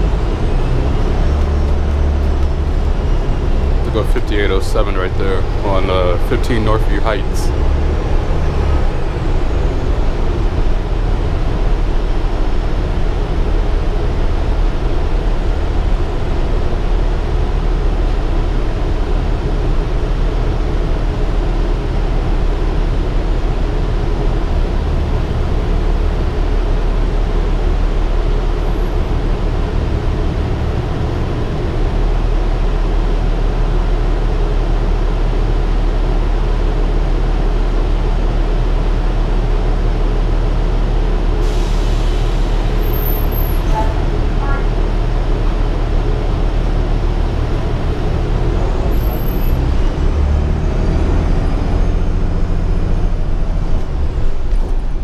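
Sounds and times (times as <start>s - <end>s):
bus engine and road rumble: 0.0s - 55.0s.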